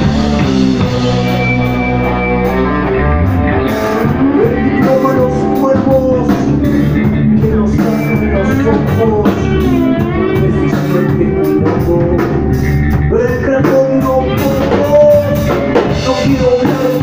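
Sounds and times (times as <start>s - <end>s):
drum kit: 0.0s - 17.0s
electric guitars: 0.0s - 17.0s
person singing: 0.0s - 17.0s.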